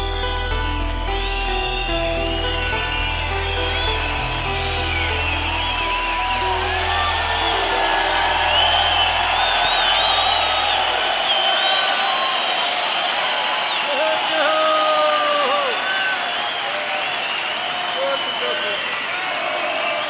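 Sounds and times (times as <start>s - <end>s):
audience cheering and applauding: 0.0s - 20.0s.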